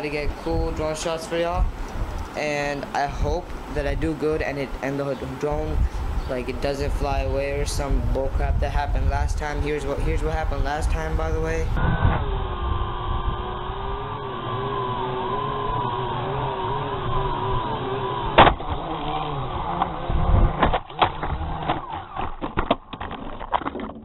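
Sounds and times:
drone motors whining: 0:10.3 - 0:23.2
drone crashing to the ground: 0:11.8 - 0:24.0.

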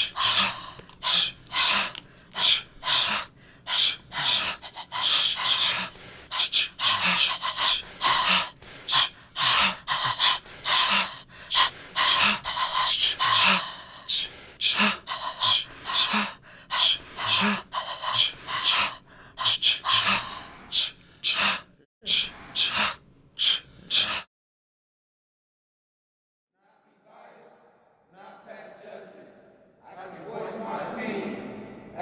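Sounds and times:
people breathing hard: 0:00.0 - 0:24.3
sharp hissing breaths: 0:00.0 - 0:24.3.

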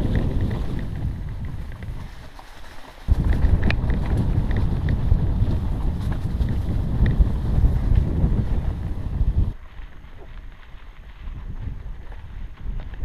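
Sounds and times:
wind buffeting microphone: 0:00.0 - 0:02.4, 0:03.0 - 0:13.0.

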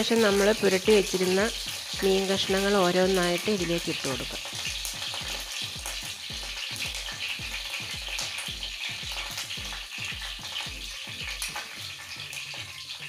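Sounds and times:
vegetables sizzling in hot oil: 0:00.0 - 0:13.0.

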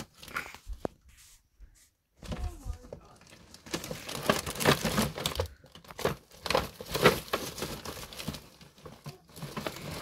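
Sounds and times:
plastic crackling: 0:00.0 - 0:01.0, 0:02.2 - 0:10.0.

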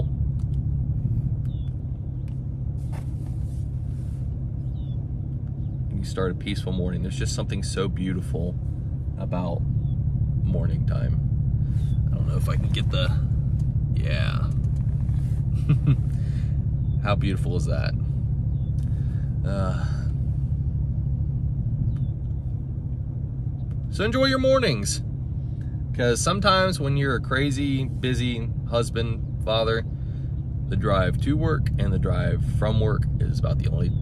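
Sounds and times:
vehicle engine and road noise: 0:00.0 - 0:34.0.

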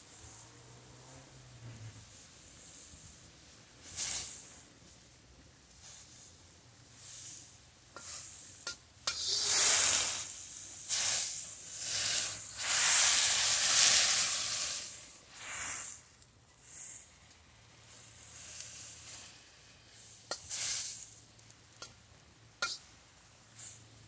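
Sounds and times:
broccoli sizzling in a wok: 0:00.0 - 0:24.0
spatula clicking against wok: 0:08.0 - 0:09.3, 0:22.6 - 0:22.8.

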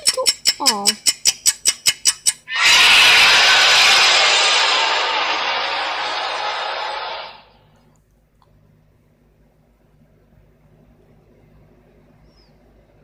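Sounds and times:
rapid even ticking: 0:00.0 - 0:02.5
loud harsh noise blast: 0:02.5 - 0:07.6.

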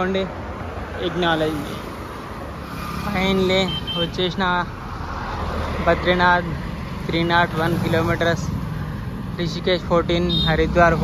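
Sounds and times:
highway traffic rumble: 0:00.0 - 0:11.0.

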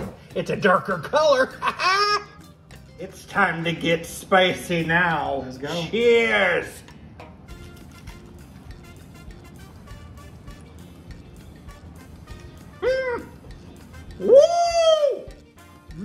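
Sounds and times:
quiet background music: 0:00.0 - 0:16.0
high-pitched cries: 0:12.6 - 0:16.0.

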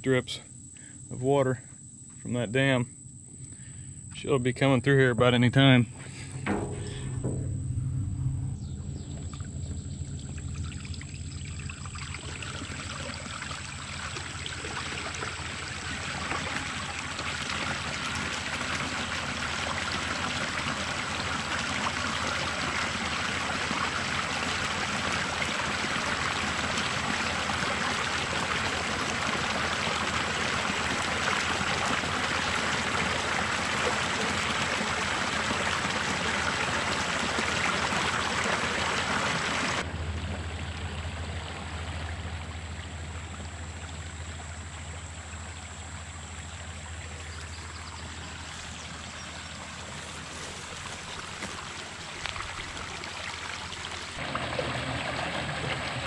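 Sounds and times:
water gushing and splashing: 0:06.1 - 0:56.0.

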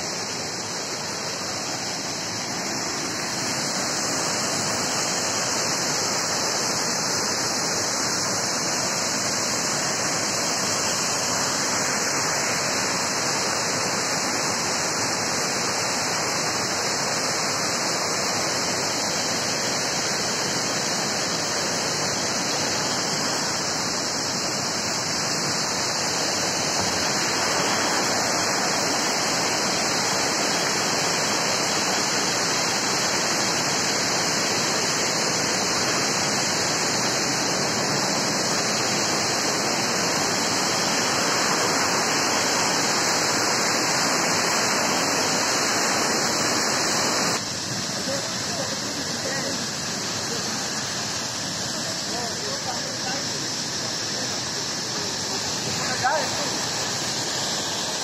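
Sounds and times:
stream rushing over rocks: 0:00.0 - 0:58.0.

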